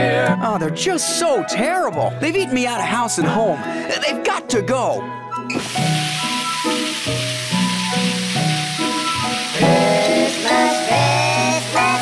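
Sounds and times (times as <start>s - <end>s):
background music of stepped notes: 5.4s - 12.0s
gas hissing from canister: 5.5s - 12.0s.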